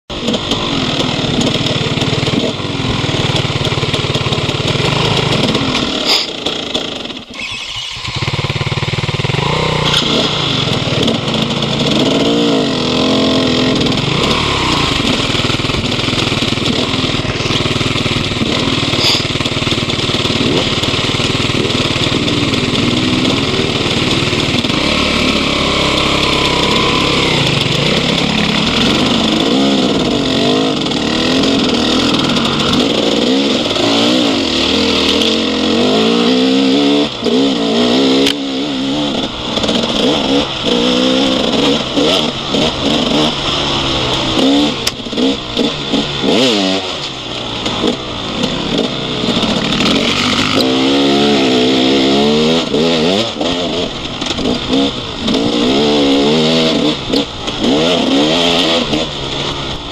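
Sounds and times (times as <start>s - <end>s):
dirt bike engine revving: 0.1s - 59.9s
continuous rushing noise: 9.7s - 59.9s.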